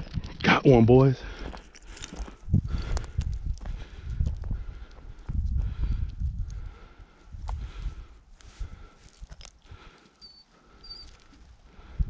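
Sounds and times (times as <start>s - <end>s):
slow uneven footsteps: 0.0s - 12.0s.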